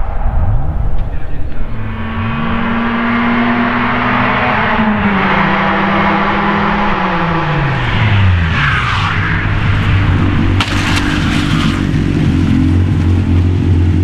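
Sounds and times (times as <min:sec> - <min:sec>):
race car engine revving: 0:01.0 - 0:14.0.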